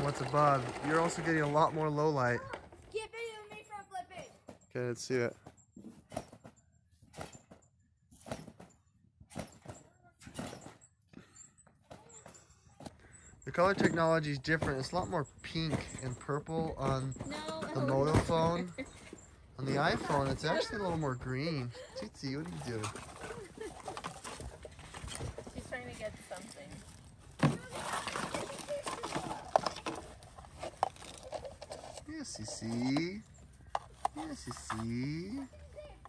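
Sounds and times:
trampoline mat thuds: 8.2 - 10.8.

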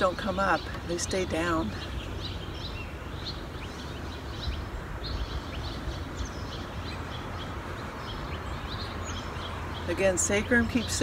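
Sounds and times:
songbirds chirping: 0.0 - 11.0.

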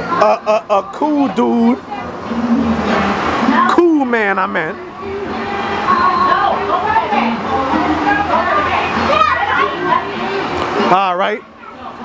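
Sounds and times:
adults and children chattering: 0.0 - 12.0.

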